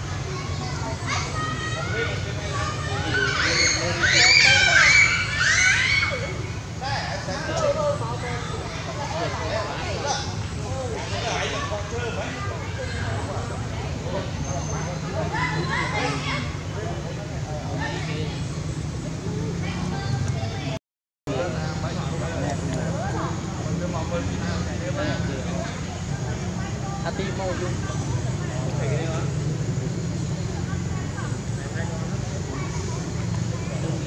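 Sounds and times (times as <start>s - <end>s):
high-pitched voices chattering: 0.0s - 34.0s
high arching calls: 0.1s - 6.9s.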